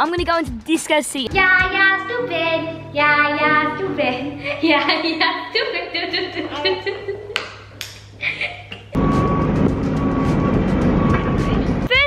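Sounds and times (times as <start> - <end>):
truck engine running: 1.3 - 6.4, 9.0 - 11.9
faint high beep: 9.0 - 11.6.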